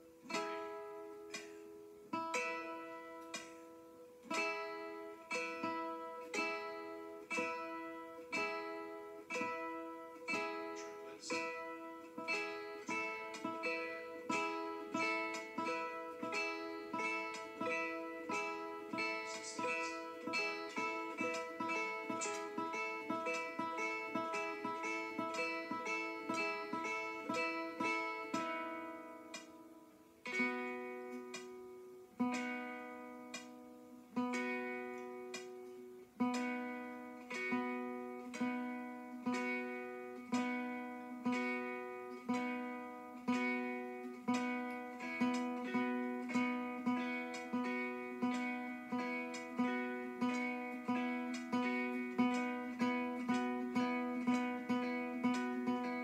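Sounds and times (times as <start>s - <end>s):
classical guitar fingerpicked notes: 0.0s - 56.0s.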